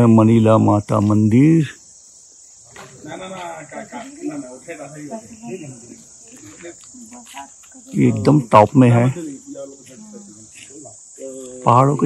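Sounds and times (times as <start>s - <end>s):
insects droning: 0.0s - 12.0s
faint voices talking: 2.6s - 12.0s.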